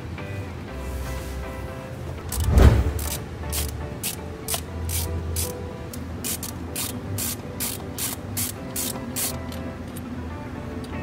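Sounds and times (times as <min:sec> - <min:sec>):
background music: 0:00.0 - 0:11.0
ratchet tool clicking: 0:02.3 - 0:10.0
dull thump: 0:02.4 - 0:03.0.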